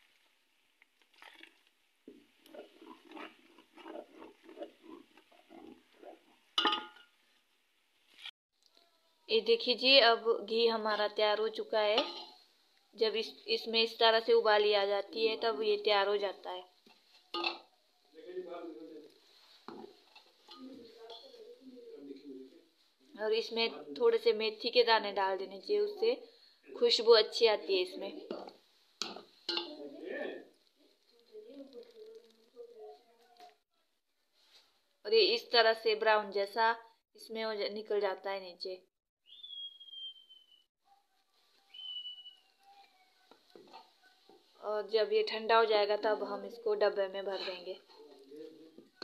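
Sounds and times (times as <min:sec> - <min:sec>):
metal ladle clinking on pot: 0:06.6 - 0:07.1, 0:12.0 - 0:12.4, 0:16.9 - 0:17.7, 0:29.0 - 0:29.8
whistled notes gliding down: 0:39.3 - 0:40.6, 0:41.7 - 0:42.6.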